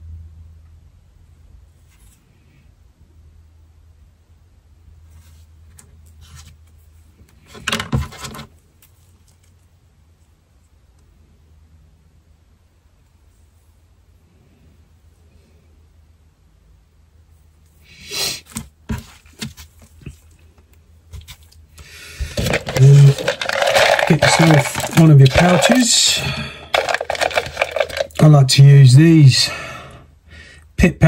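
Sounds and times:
faint low hum: 0.0s - 17.9s
small knocks and rustles: 5.1s - 9.6s
rustling scrape: 21.2s - 28.2s.

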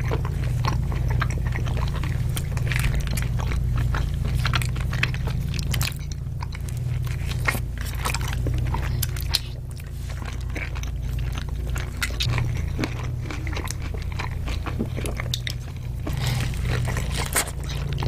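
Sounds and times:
biting chewing and crunching: 0.0s - 18.0s
steady low hum: 0.0s - 18.0s.

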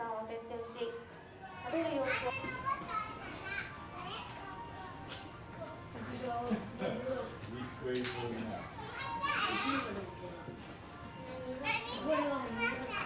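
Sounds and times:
children chattering: 1.4s - 13.0s.

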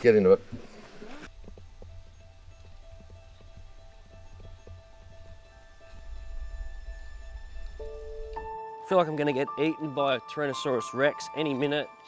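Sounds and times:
footsteps on loose rock: 0.6s - 6.2s
soft background music: 1.2s - 12.0s.

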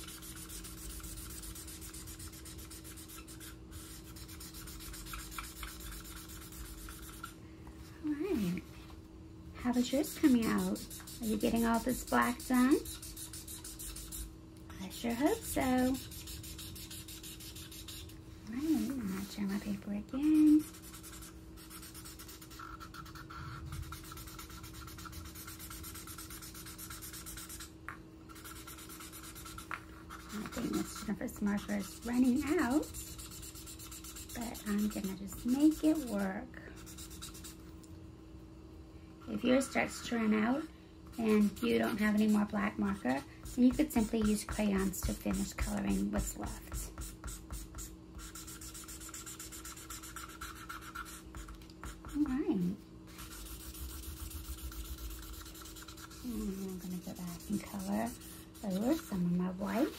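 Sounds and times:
marker scribbling on paper: 0.0s - 7.4s, 9.6s - 27.7s, 28.3s - 37.6s, 41.1s - 52.5s, 53.1s - 59.9s.

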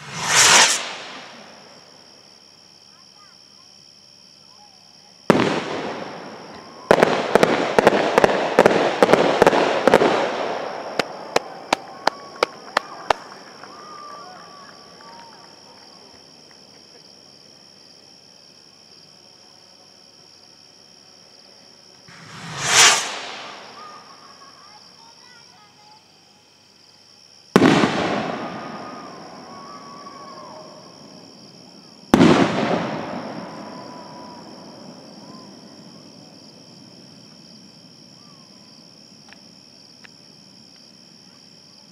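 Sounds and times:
firework bangs echoing: 0.0s - 1.8s, 5.3s - 13.7s, 22.1s - 24.4s, 27.6s - 29.0s, 32.1s - 34.6s
firework rocket rush: 0.0s - 2.0s, 5.3s - 13.4s, 22.1s - 24.6s, 27.6s - 29.4s, 32.2s - 34.7s.

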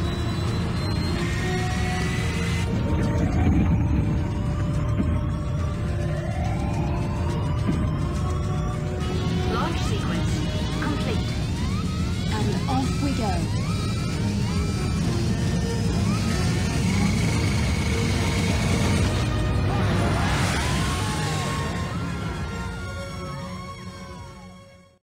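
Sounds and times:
film music: 0.0s - 25.0s
low machinery rumble: 1.6s - 24.4s.

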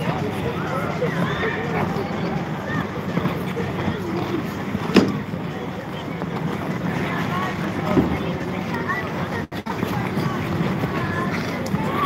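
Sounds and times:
skaters' voices chattering: 0.0s - 12.0s
steady rushing noise: 0.0s - 12.0s.

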